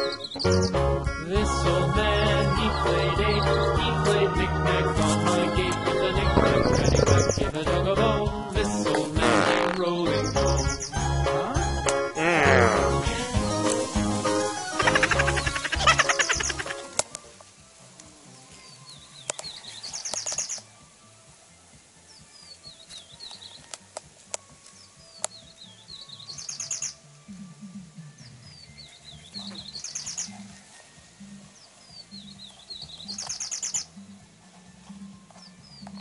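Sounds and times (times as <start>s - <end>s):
songbird chirps and trill: 0.0s - 36.0s.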